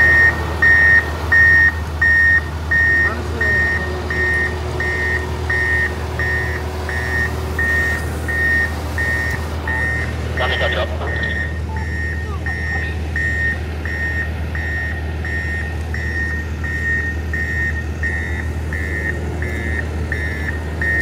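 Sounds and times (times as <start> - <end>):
diesel machinery droning: 0.0 - 21.0
vehicle backup alarm beeping: 0.0 - 21.0.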